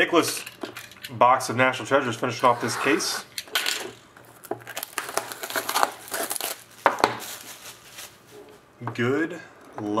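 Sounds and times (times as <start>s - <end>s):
plastic wrap crinkling: 4.2s - 8.3s.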